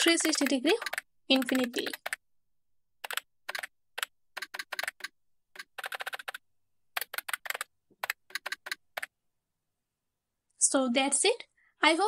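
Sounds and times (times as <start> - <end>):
computer keyboard typing: 0.0 - 2.3, 3.0 - 9.2.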